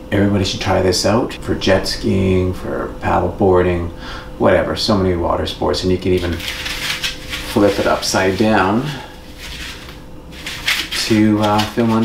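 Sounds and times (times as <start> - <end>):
faint steady hum: 0.0 - 12.0
faint rubbing and light knocks: 6.2 - 12.0.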